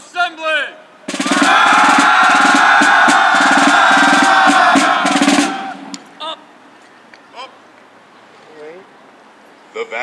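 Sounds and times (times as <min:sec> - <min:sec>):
fast snare drumming: 0:01.1 - 0:06.0
fifes playing high notes: 0:01.1 - 0:06.2.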